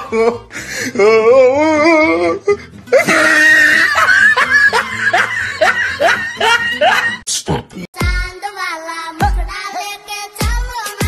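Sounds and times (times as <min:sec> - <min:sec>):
person laughing: 0:02.9 - 0:07.9.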